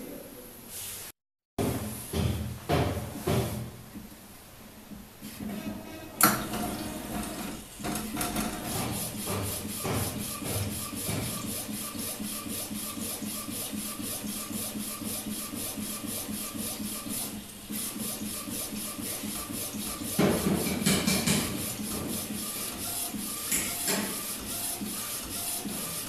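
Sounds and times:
printer clack: 4.9 - 26.0.

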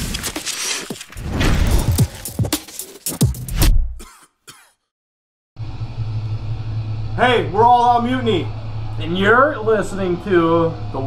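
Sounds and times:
steady low hum: 5.6 - 11.0.

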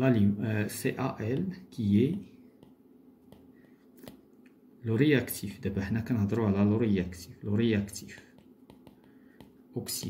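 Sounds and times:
man talking: 0.0 - 2.4, 4.8 - 8.4, 9.7 - 10.0
stylus tapping on glass screen: 2.6 - 4.3, 8.2 - 9.6.

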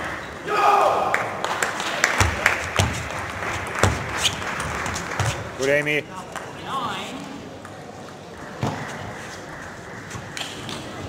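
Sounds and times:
large hall background noise: 0.0 - 11.0.

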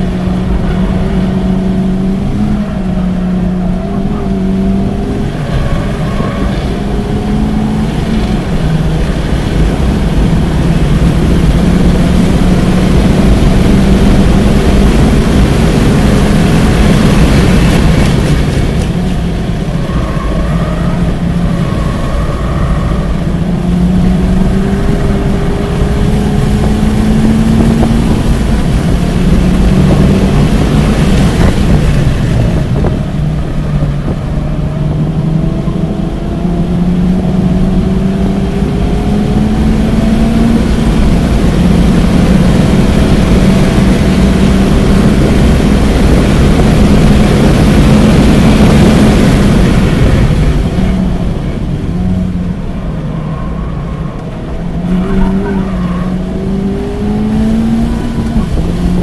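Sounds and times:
car engine accelerating hard: 0.0 - 59.0
tyre and road noise: 0.0 - 59.0.

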